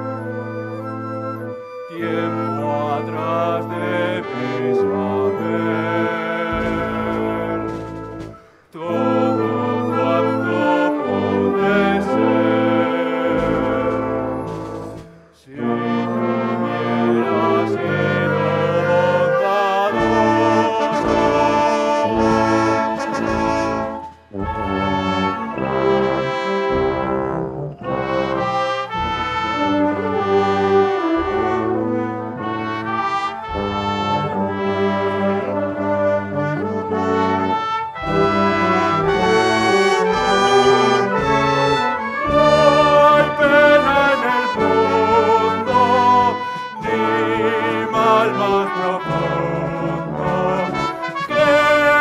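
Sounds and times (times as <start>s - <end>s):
trombones and trumpets: 0.0s - 52.0s
wind band playing: 0.0s - 52.0s.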